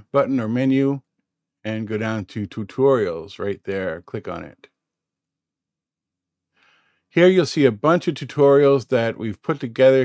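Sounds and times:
faint intake of breath: 6.6s - 7.1s.

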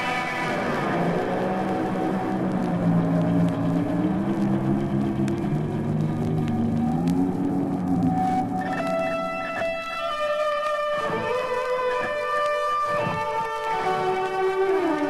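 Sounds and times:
electric guitar held notes: 0.0s - 15.0s
rock music from vinyl: 0.0s - 15.0s.

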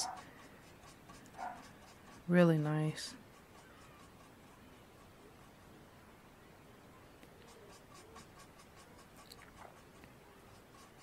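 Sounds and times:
marker scratching on cardstock: 0.0s - 5.6s, 7.3s - 11.0s.

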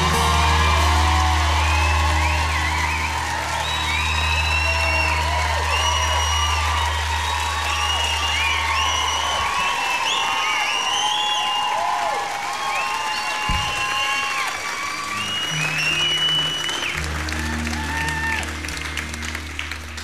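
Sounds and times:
whoops: 0.0s - 18.8s
audience cheering and applauding: 0.0s - 20.0s.

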